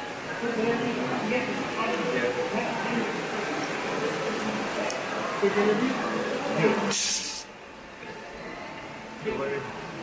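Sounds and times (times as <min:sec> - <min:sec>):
crowd chatter: 0:00.0 - 0:10.0
burst of hiss: 0:06.9 - 0:07.5.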